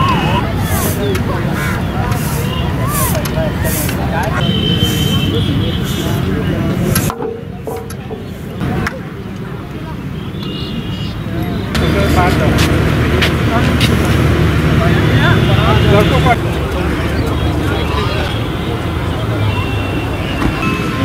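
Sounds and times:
engine humming: 0:00.0 - 0:10.6, 0:11.2 - 0:19.3
people chattering: 0:00.0 - 0:21.0.

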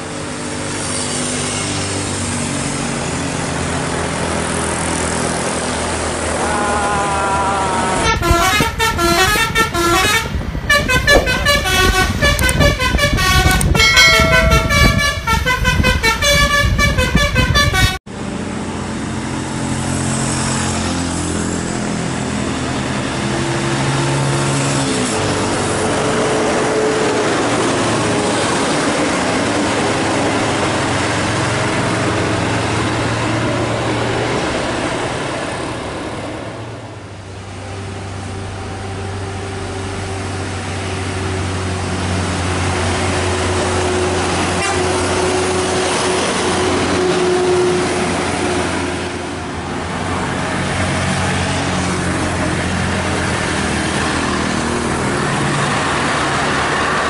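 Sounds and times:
bus diesel engine running: 0:00.0 - 0:57.0
melodic multi-tone horn: 0:08.0 - 0:18.0.

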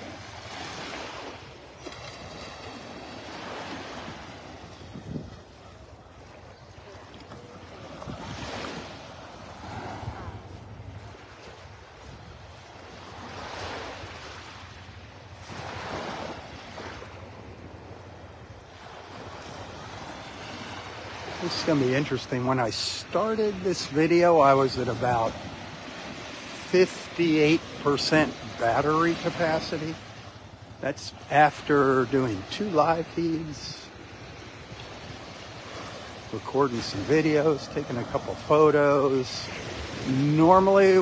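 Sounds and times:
waves washing on sandy shore: 0:00.0 - 0:41.0
wind on microphone: 0:04.8 - 0:05.6.

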